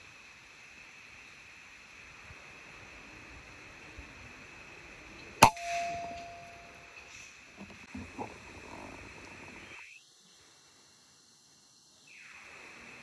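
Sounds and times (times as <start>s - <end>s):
thin metallic ring: 5.4s - 7.1s.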